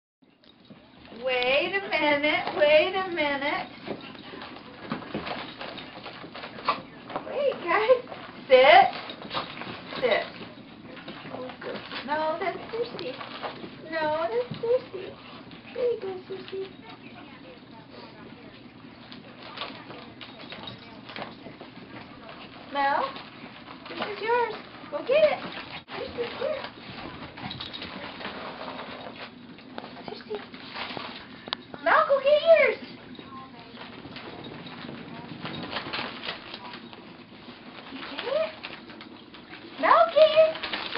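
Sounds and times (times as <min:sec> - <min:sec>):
dogs scuffling: 0:00.3 - 0:40.9
wrapping paper rustling: 0:00.9 - 0:17.5, 0:18.9 - 0:40.9
dogs whimpering: 0:09.0 - 0:17.2.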